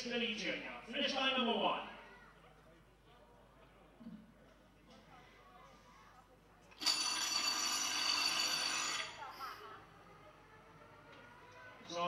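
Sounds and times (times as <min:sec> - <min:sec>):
electric bell ringing: 0:06.8 - 0:09.3.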